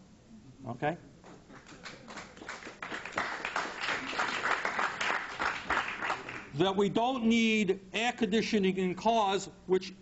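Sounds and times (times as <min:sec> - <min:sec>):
audience applauding: 0:01.5 - 0:06.5.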